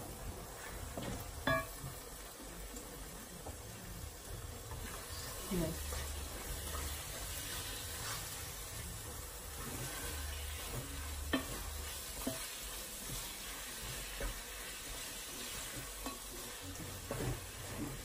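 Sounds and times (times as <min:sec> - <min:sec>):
steady sizzle: 0:00.0 - 0:18.0
wooden spoon stirring in pot: 0:00.0 - 0:18.0
spoon knocking against pot: 0:01.4 - 0:01.8.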